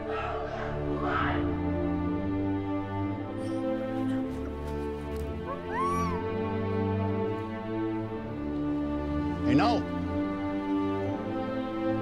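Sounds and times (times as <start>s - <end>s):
dramatic music with held chords: 0.0s - 12.0s
short high cry: 5.5s - 6.2s.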